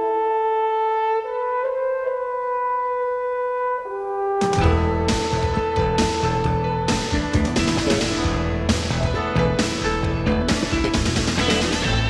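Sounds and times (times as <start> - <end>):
theme music with guitar: 4.4 - 12.0.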